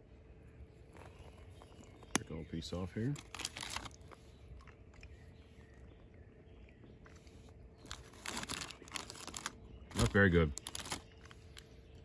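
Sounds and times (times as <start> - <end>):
wrapper crinkling and crunching: 3.0 - 5.0, 7.8 - 11.6.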